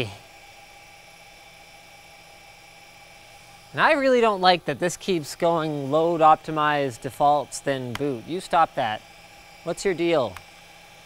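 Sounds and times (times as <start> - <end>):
room tone hum and hiss: 0.0 - 11.0
thin steady tones: 0.0 - 11.0
person speaking: 3.7 - 10.4.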